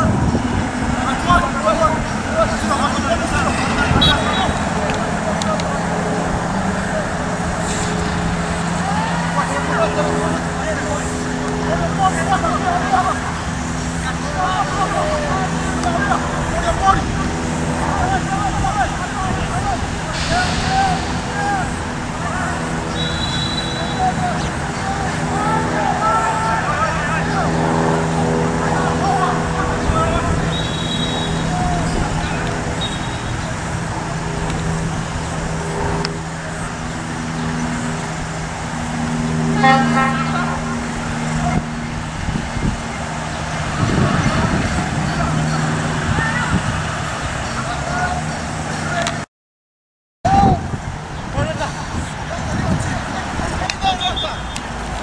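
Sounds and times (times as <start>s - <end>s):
distant players calling out: 0.0s - 34.8s, 39.0s - 42.0s, 50.3s - 54.9s
engine droning: 0.0s - 49.2s
road traffic hum: 0.0s - 49.3s, 50.3s - 55.0s.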